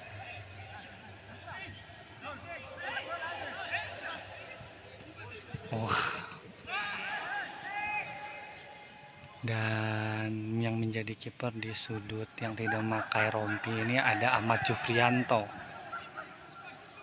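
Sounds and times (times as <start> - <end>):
people shouting at a distance: 5.8 - 9.2, 12.5 - 17.0.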